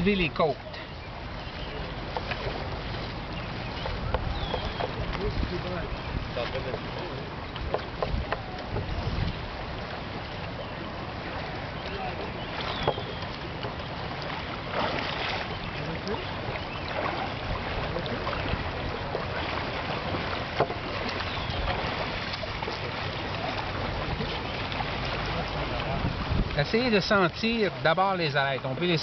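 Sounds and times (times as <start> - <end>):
water noise: 0.0 - 29.0
wind: 0.0 - 29.0.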